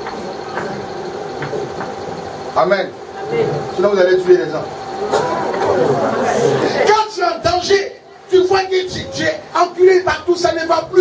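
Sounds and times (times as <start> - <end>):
crowd talking in echoing hall: 2.8 - 9.5.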